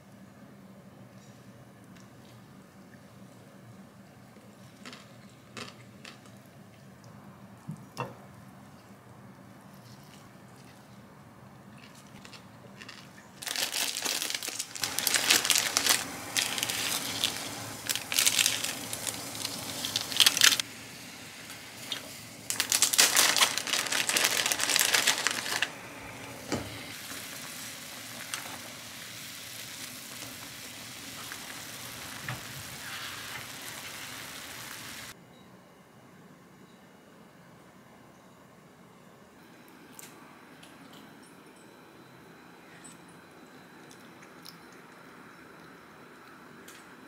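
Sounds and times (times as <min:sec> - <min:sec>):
plastic packet crinkling: 0:11.9 - 0:20.6, 0:21.9 - 0:25.8
gas burner hissing: 0:14.5 - 0:23.0, 0:24.5 - 0:35.2.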